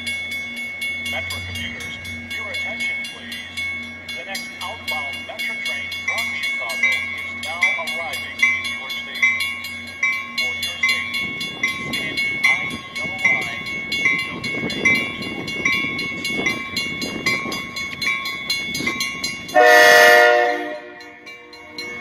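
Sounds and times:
train rumble: 0.0 - 22.0
train warning bell ringing: 0.0 - 22.0.

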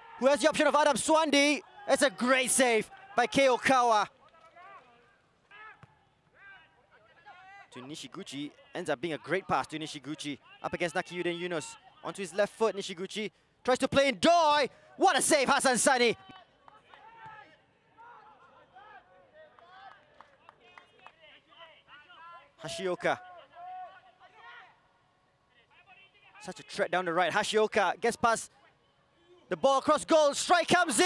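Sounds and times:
faint shouts of players: 0.0 - 7.8, 14.2 - 20.9, 21.5 - 24.9.

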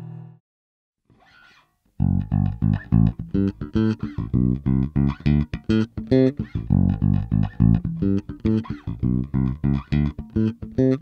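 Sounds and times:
electric bass plucked notes: 2.0 - 11.0.

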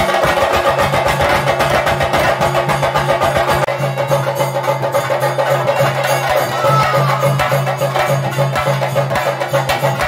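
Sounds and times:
drums beaten rapidly with sticks: 0.0 - 10.0.

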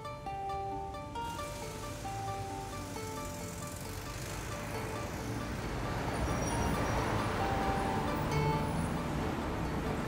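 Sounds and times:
film music held notes: 0.0 - 10.0
heavy road traffic: 0.0 - 10.0.

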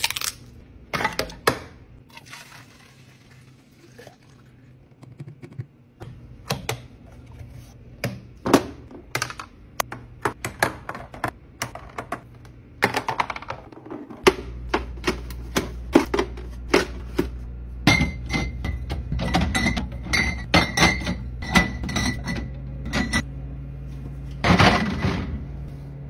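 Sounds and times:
steady low hum: 3.4 - 26.0
glass bottles clinking: 17.9 - 23.2.

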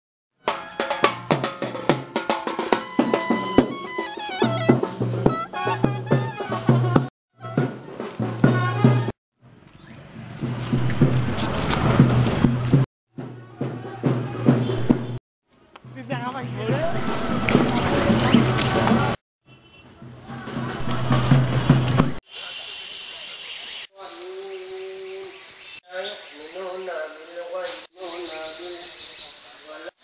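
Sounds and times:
side drums beating: 0.4 - 9.1, 10.4 - 15.2, 15.8 - 19.2, 20.0 - 22.2
wind instrument tune: 0.4 - 9.1
street noise: 0.4 - 30.0.

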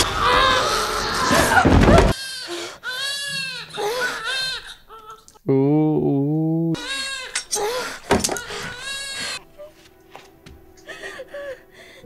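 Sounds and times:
newborn baby crying: 0.0 - 5.3, 6.8 - 9.7.

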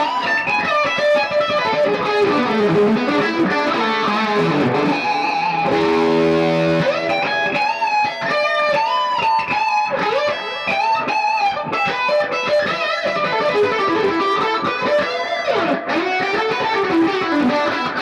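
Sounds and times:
overdriven electric guitar lead lines: 0.0 - 18.0.

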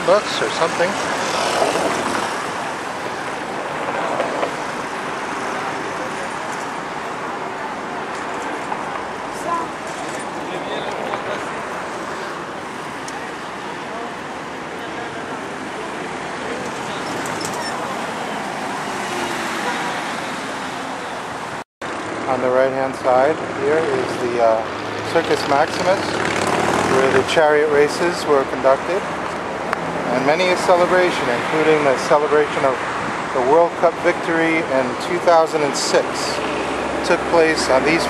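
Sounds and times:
busy road traffic: 0.0 - 38.0.

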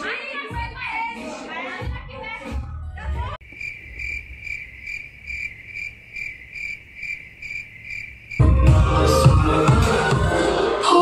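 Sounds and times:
cricket chirping: 3.4 - 8.6.

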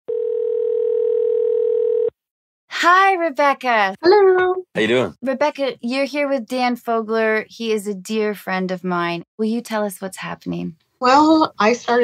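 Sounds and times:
telephone ringback tone: 0.1 - 2.1.

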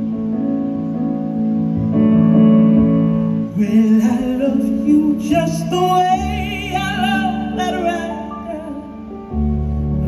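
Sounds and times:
woman singing: 3.6 - 9.0.

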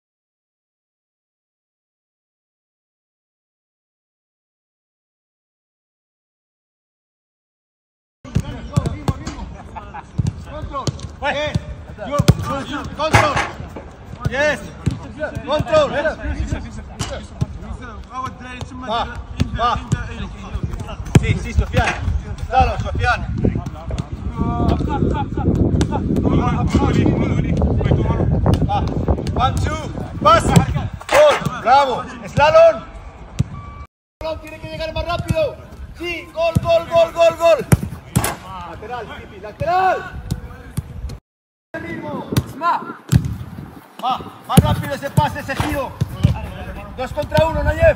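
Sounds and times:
boot kicking football thuds: 43.1 - 43.6, 44.5 - 46.6.

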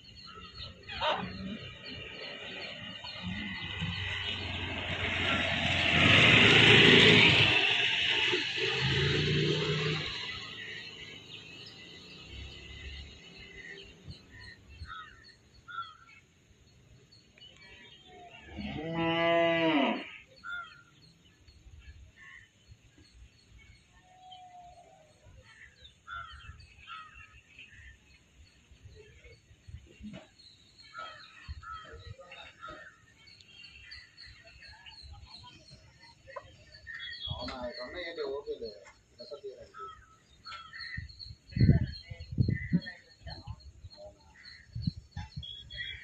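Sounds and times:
rush of noise: 2.4 - 10.8
cow mooing: 18.5 - 20.1.

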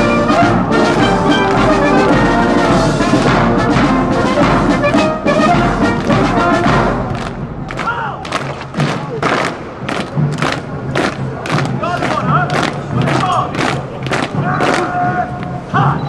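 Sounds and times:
faint crowd voices: 0.0 - 16.0
marching boots on cobblestones: 0.3 - 15.8.

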